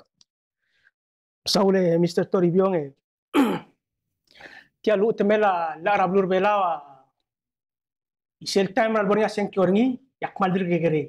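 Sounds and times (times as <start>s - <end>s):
person sighing: 3.4s - 3.7s.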